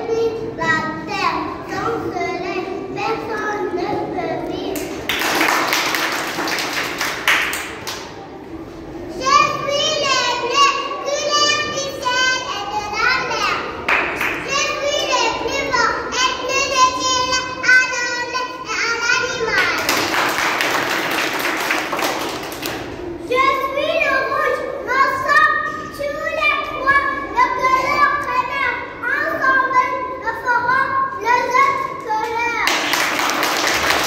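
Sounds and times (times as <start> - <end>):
applause: 4.8 - 8.1, 13.9 - 14.4, 19.6 - 22.9, 32.6 - 34.0
audience clapping: 4.8 - 8.1, 13.9 - 14.5, 19.5 - 22.9, 32.6 - 34.0.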